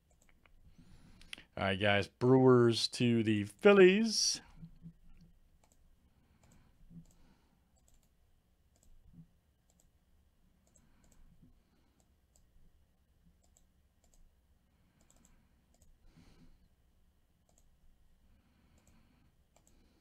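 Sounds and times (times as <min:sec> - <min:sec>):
computer mouse clicks: 0:00.0 - 0:00.6, 0:04.6 - 0:05.8, 0:06.4 - 0:10.0, 0:10.6 - 0:12.5, 0:13.4 - 0:14.3, 0:14.9 - 0:16.0, 0:17.4 - 0:17.8, 0:18.7 - 0:20.0.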